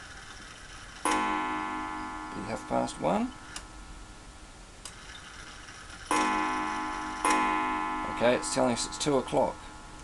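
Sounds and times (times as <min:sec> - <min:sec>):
mantel clock striking: 0:01.0 - 0:04.1, 0:06.1 - 0:10.0.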